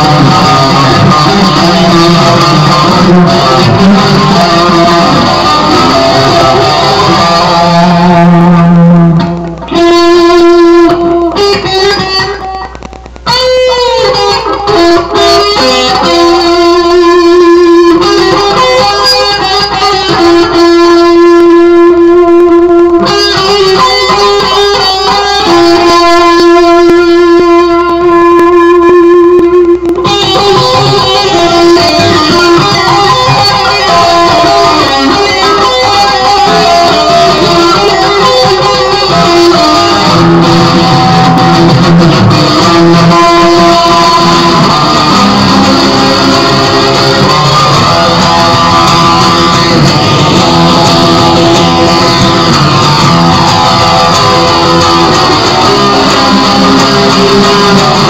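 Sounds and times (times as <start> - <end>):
electric guitar playing: 0.0 - 58.0.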